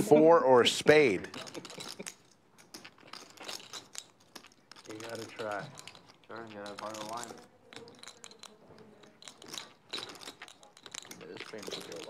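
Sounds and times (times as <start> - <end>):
poker chips clicking: 1.2 - 12.0.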